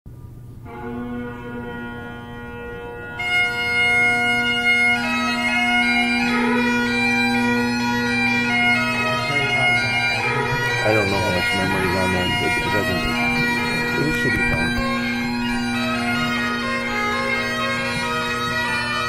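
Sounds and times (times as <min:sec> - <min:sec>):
bagpipe chanter melody: 0:00.6 - 0:19.0
bagpipe drones humming: 0:00.6 - 0:19.0.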